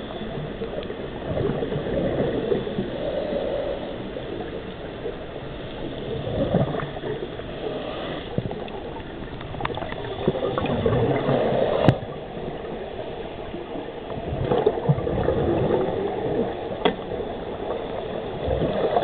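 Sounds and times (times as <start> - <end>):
bubbles gurgling underwater: 0.0 - 3.4, 5.9 - 7.4, 8.3 - 19.0.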